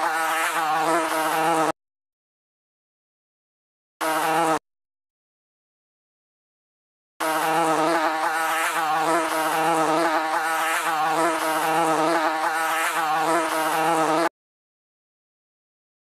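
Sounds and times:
fly buzzing: 0.0 - 1.8, 4.0 - 4.6, 7.2 - 14.3.

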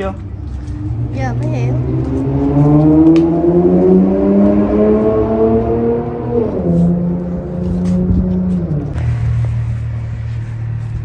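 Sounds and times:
vehicle engine accelerating: 0.0 - 11.0.

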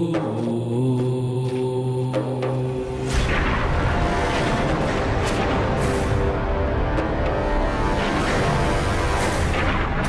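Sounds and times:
wordless vocal chant: 0.0 - 3.4.

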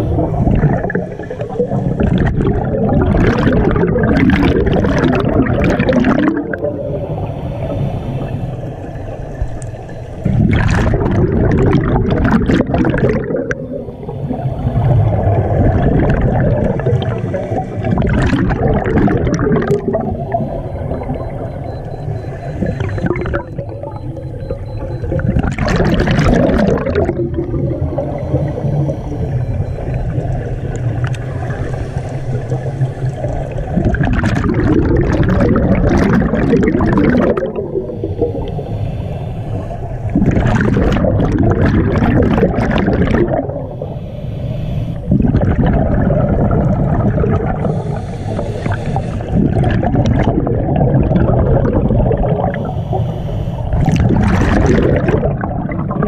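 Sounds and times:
rush of exhaled bubbles: 0.0 - 9.5, 10.2 - 38.7, 39.5 - 44.0, 45.0 - 56.0
low underwater rumble: 0.0 - 56.0.

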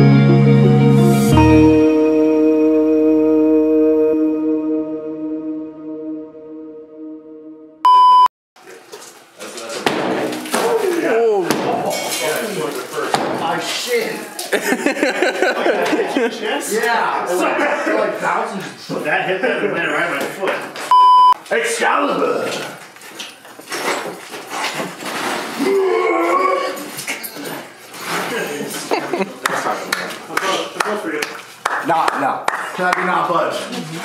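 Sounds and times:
loud single-pitch bleep: 7.8 - 8.3, 20.9 - 21.4
sledgehammer hitting brick pillar: 9.8 - 12.3, 13.1 - 13.7.

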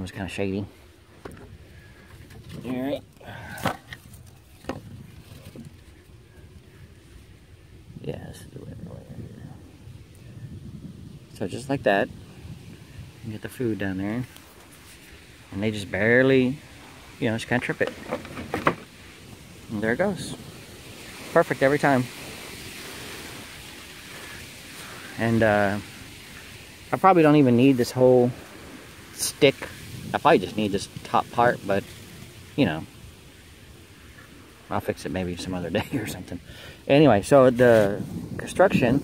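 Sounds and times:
outdoor background hiss: 0.0 - 39.0
wooden knocks: 17.8 - 18.8.

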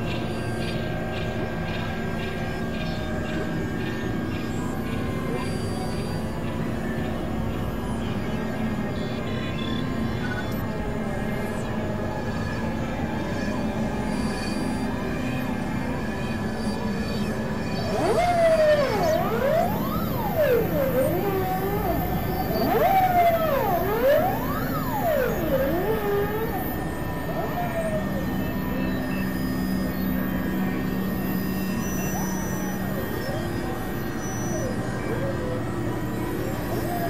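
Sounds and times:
low synthesizer drone: 0.0 - 37.0
synthesizer tone sweeping up and down: 2.1 - 37.0.

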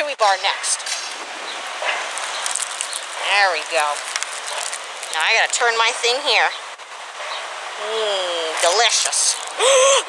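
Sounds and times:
outdoor background rush: 0.0 - 10.0
soft rustle: 1.8 - 5.7.

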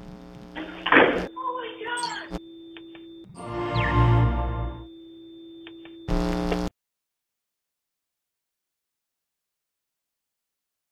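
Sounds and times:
electronic sting with falling tone: 3.3 - 4.9
held synth chord: 3.3 - 4.9.

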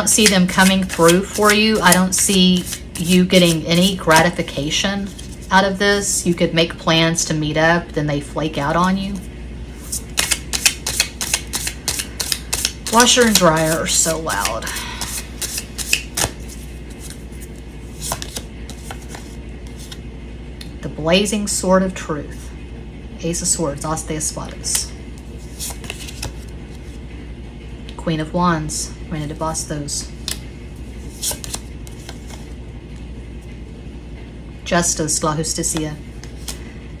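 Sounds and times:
cards being shuffled: 0.0 - 5.5, 9.8 - 20.0, 24.7 - 27.0, 30.2 - 32.6, 35.7 - 36.7
washer and dryer hum: 0.0 - 37.0.

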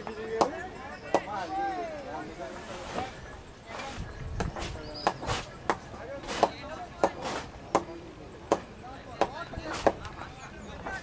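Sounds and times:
players calling and shouting: 0.0 - 11.0.

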